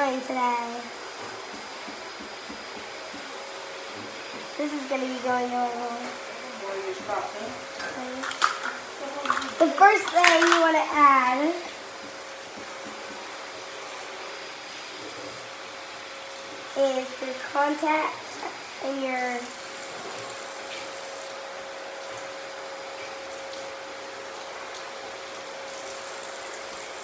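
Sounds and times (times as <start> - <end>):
background hiss: 0.0 - 21.4
faint constant hum: 0.0 - 27.0
low room noise: 0.0 - 27.0.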